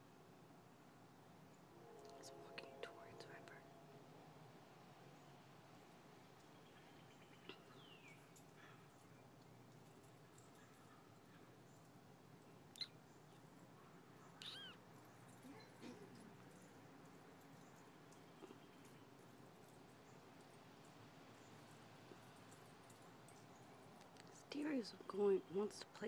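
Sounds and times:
faint high chirps: 0:12.7 - 0:13.4
faint animal call: 0:14.3 - 0:14.8.

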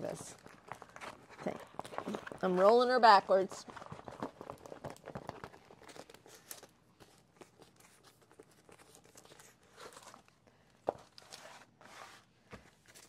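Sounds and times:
plastic film crinkling: 0:00.0 - 0:11.4.

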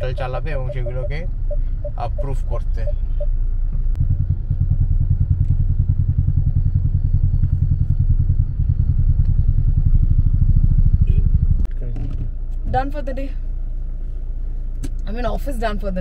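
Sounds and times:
vehicle engines idling: 0:00.0 - 0:16.0.

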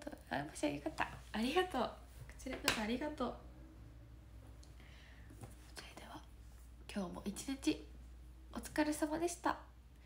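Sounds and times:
woman speaking: 0:00.0 - 0:03.4, 0:06.9 - 0:07.9, 0:08.5 - 0:09.7
woman whispering: 0:05.7 - 0:06.3.

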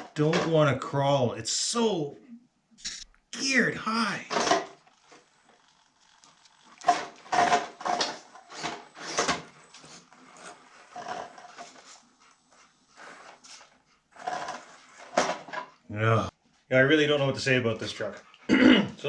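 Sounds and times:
tires scrabbling on stone: 0:04.4 - 0:12.1.

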